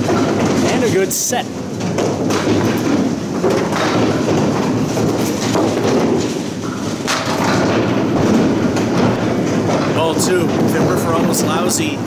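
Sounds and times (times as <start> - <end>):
balls knocking pins: 0.0 - 12.0
bowling balls rolling on wooden lanes: 0.0 - 12.0.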